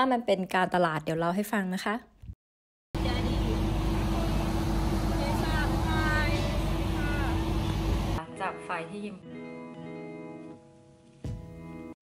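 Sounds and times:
boat engine idling: 3.0s - 8.2s.

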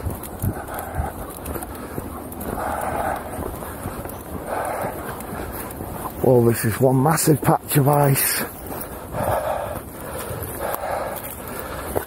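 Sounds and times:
footsteps crunching on frost: 0.0s - 12.0s.

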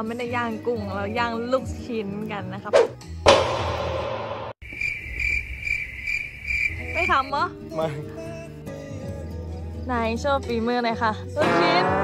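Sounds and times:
insect chirping trill: 4.6s - 7.4s.

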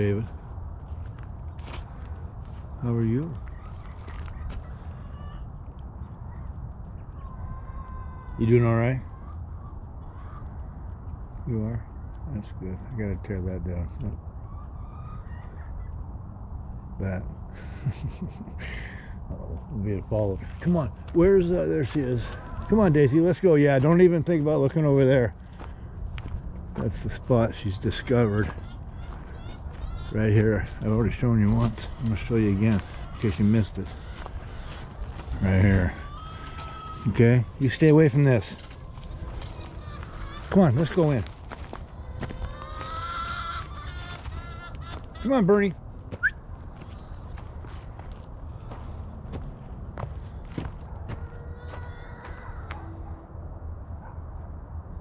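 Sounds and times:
steady low rumble: 0.0s - 8.3s, 9.0s - 55.0s
distant bird calls: 0.0s - 55.0s.

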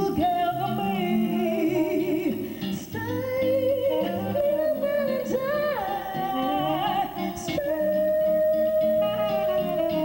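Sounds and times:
woman singing with vibrato: 0.0s - 10.0s.

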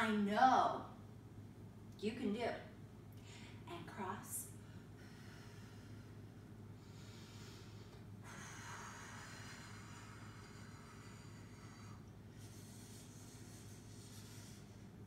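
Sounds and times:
steady low hum: 0.0s - 15.0s
woman breathing: 3.2s - 3.7s, 4.5s - 15.0s.

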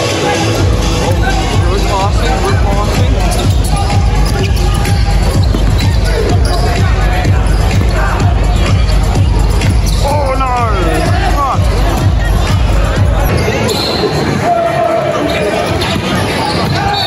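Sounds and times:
crowd voices: 0.0s - 17.0s
music with steady beat: 0.2s - 13.3s
basketball bouncing on court: 2.2s - 10.1s.

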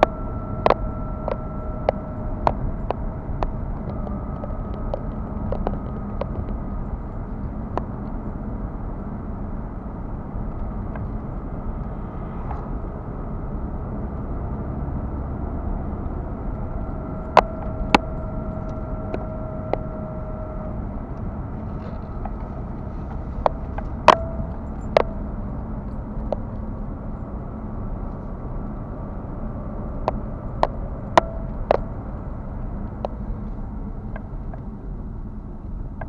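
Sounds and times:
faint steady whine: 0.0s - 36.0s
road and engine rumble in car: 0.0s - 36.0s.

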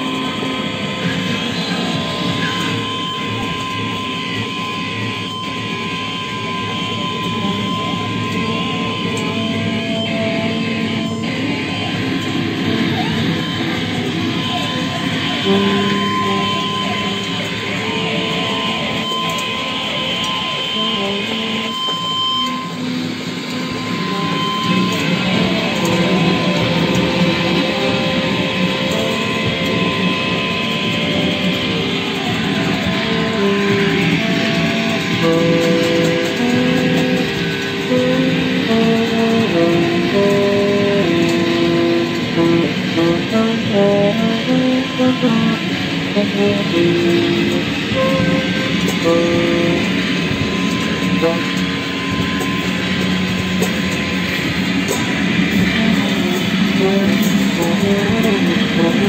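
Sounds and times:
electric guitar drone music: 0.0s - 59.0s
steady high tone: 0.0s - 59.0s.

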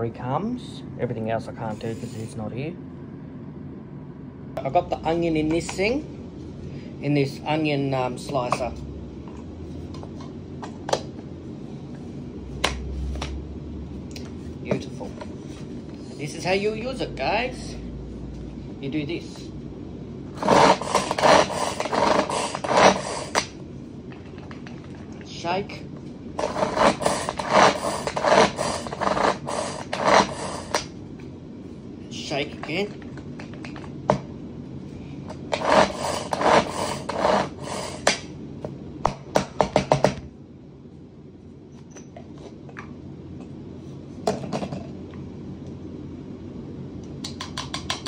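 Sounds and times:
pull-cord food chopper chopping: 20.4s - 23.6s, 26.4s - 30.9s, 35.4s - 38.2s.

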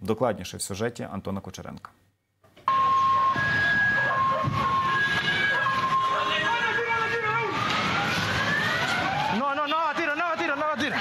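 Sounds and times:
loud street noise: 2.7s - 11.0s
two-tone siren: 2.7s - 11.0s.

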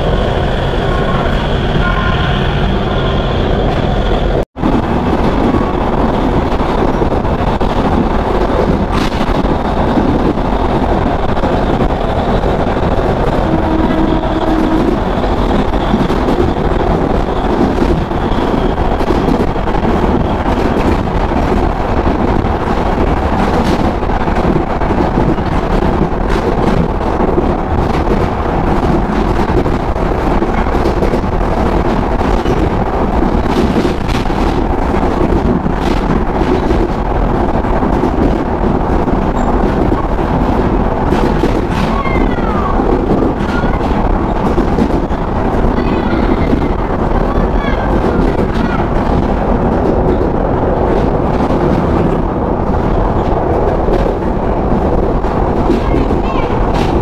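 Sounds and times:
train rumbling along track: 0.0s - 57.0s
wind buffeting microphone: 0.0s - 57.0s
sharp clacks of train wheels: 4.7s - 57.0s.

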